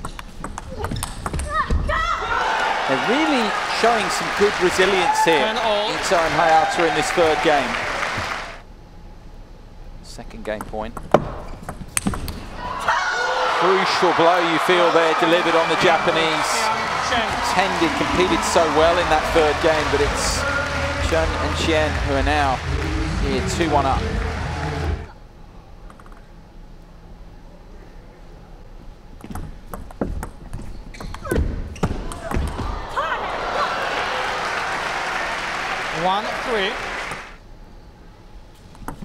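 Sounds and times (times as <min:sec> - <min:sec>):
low hall background: 0:00.0 - 0:39.0
spectator applause: 0:01.9 - 0:08.6, 0:12.6 - 0:25.1, 0:32.1 - 0:37.4
commentator speaking: 0:13.6 - 0:24.3, 0:35.9 - 0:36.9
hall ambience: 0:13.6 - 0:25.2.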